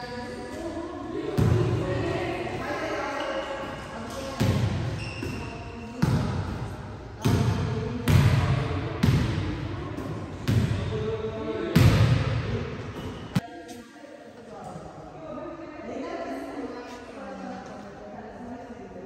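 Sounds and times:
volleyballs struck with echo: 3.6 - 11.1, 11.7 - 13.4.

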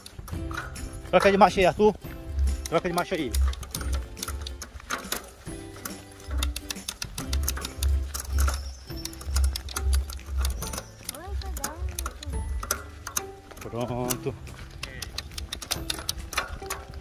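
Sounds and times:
background music: 0.0 - 17.0
bicycle chain ticking: 0.0 - 17.0
derailleur shifting clicks: 0.0 - 17.0.

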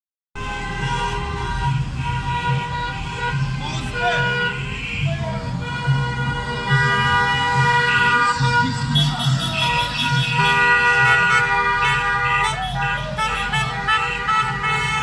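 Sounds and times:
car engine noise: 0.4 - 15.0
car horns honking: 0.4 - 15.0.

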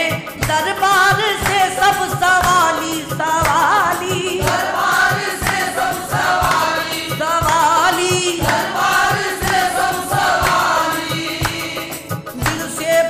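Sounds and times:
male voices singing together: 0.0 - 13.0
steady drum beat: 0.0 - 13.0.

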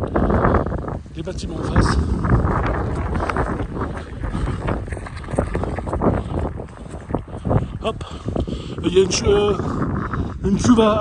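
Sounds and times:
footsteps on wet ground: 0.0 - 10.7
wind buffeting microphone: 0.0 - 11.0.

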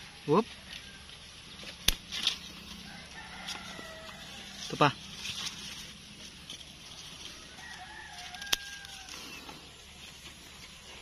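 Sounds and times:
rooster crowing: 0.0 - 1.3, 2.6 - 4.9, 7.2 - 9.8
rustle: 0.0 - 11.0.

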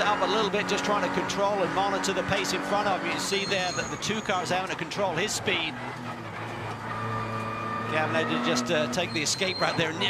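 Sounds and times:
race car engine running: 0.0 - 10.0.

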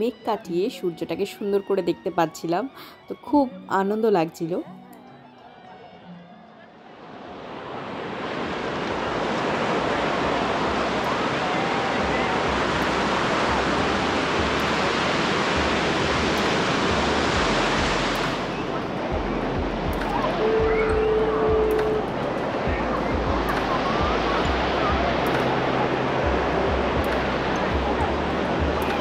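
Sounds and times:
surf breaking on beach: 7.0 - 29.0
short steady tone: 20.2 - 22.1.

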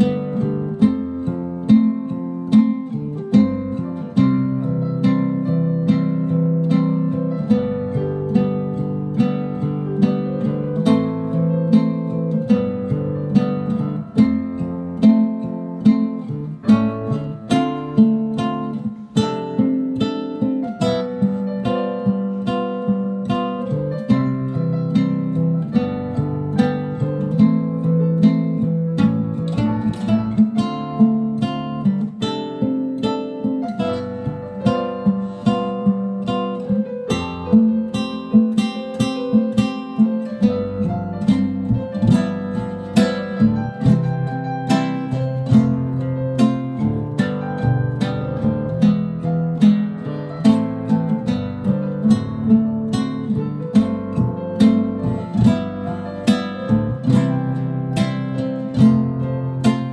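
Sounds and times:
classical guitar fingerpicking: 0.0 - 59.9.

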